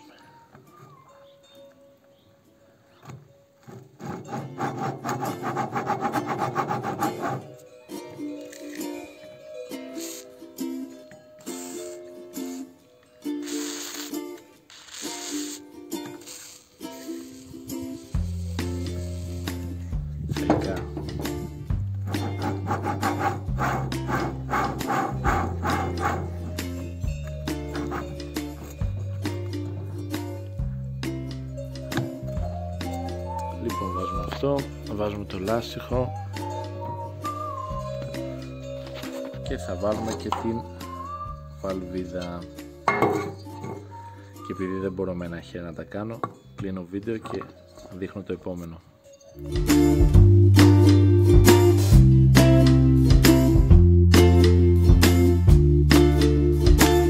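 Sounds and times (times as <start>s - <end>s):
background music: 0.0s - 57.0s
axle grating in bearings: 3.6s - 7.6s, 22.1s - 29.0s
aerosol spray hisses: 11.5s - 12.7s, 13.4s - 19.9s
bass line: 18.2s - 38.8s, 49.4s - 57.0s.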